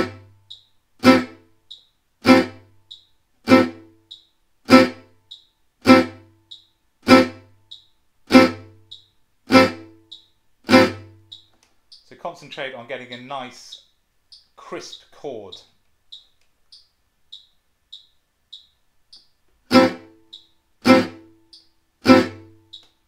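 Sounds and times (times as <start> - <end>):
faint metronome click: 1.6 - 1.9, 7.7 - 7.9, 15.5 - 21.7, 22.6 - 23.0.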